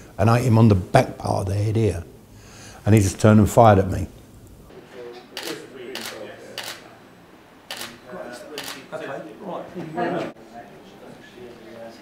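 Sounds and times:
camera shutter clicks: 0:05.4 - 0:06.8, 0:07.7 - 0:08.0, 0:08.6 - 0:08.8.

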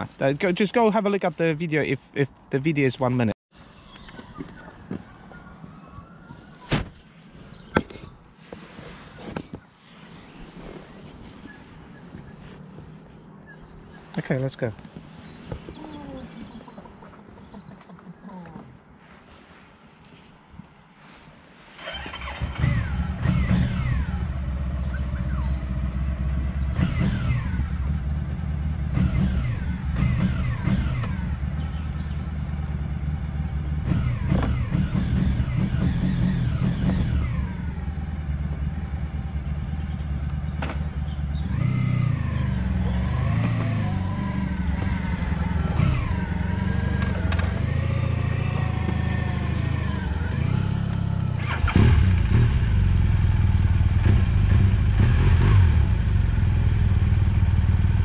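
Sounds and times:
motorcycle engine revving: 0:21.8 - 0:58.0.

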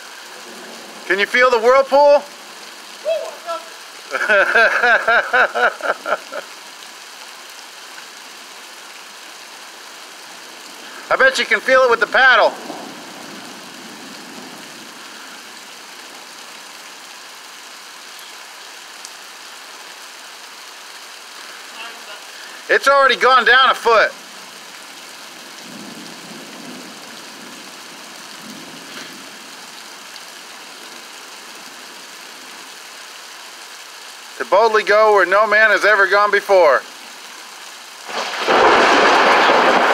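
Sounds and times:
heavy rain: 0:00.0 - 0:39.9.

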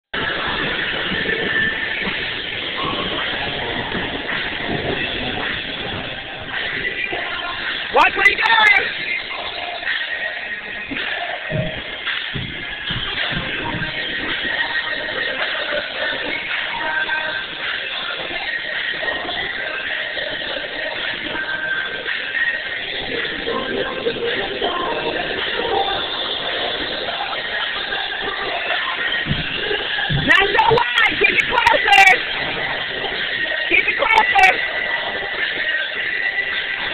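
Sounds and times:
roller skate wheels rolling: 0:08.9 - 0:36.9.

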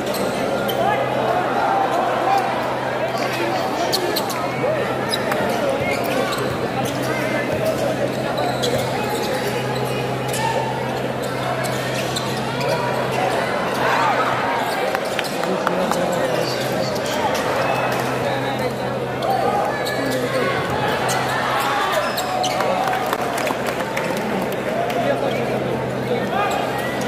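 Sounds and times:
crowd chattering and calling out: 0:00.0 - 0:27.0.

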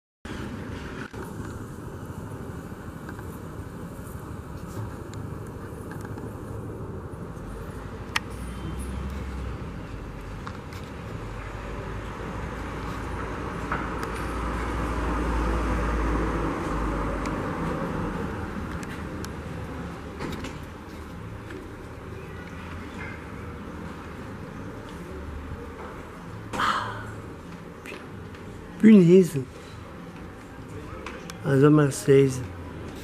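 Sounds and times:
city road traffic: 0:00.3 - 0:33.0
vehicle passing: 0:00.4 - 0:28.8.

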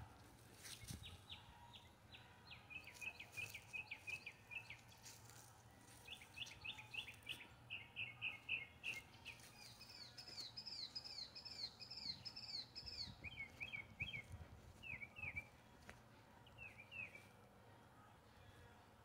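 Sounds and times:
songbirds chirping: 0:00.0 - 0:19.0.

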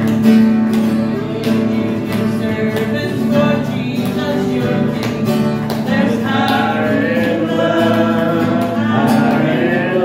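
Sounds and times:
acoustic guitar strumming: 0:00.0 - 0:10.0
gospel singing: 0:01.1 - 0:10.0.

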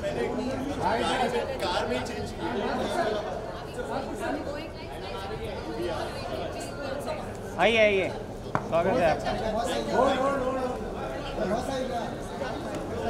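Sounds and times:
several voices chattering: 0:00.0 - 0:13.0.

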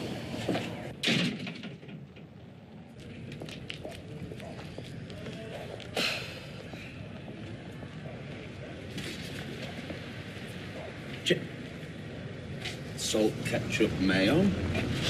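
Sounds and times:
low outdoor background noise: 0:00.0 - 0:15.0.

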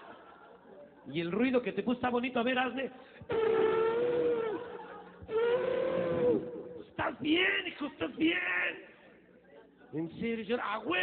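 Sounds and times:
elephant trumpeting: 0:03.3 - 0:04.6, 0:05.3 - 0:06.6.

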